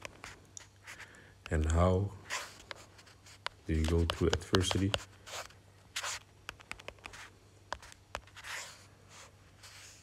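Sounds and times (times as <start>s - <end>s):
fingers rubbing screen: 2.2s - 10.0s.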